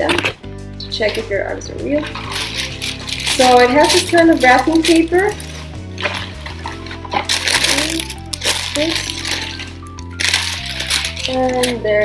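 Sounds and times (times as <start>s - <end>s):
background music: 0.0s - 12.0s
tissue paper crinkling: 2.0s - 12.0s.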